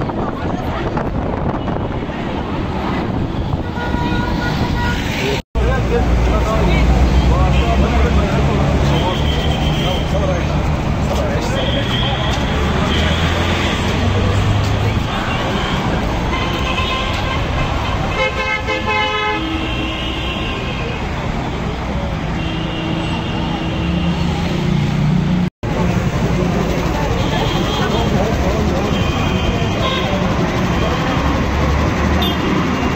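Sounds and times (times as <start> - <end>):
people's voices: 0.0 - 4.4, 5.0 - 18.2, 25.7 - 32.9
road traffic noise: 0.0 - 32.9
car horns honking: 3.5 - 5.4, 8.8 - 10.4, 14.9 - 21.0, 22.3 - 24.4, 32.2 - 32.9.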